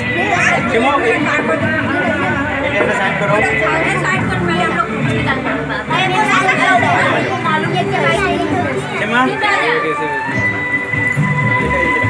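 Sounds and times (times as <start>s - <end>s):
background music: 0.0s - 12.0s
crowd talking: 0.0s - 12.0s
steady high tone: 0.2s - 10.1s.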